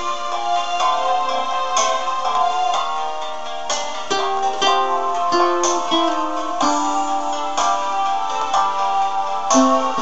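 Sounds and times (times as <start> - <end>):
acoustic guitar plucking melody: 1.3 - 10.0.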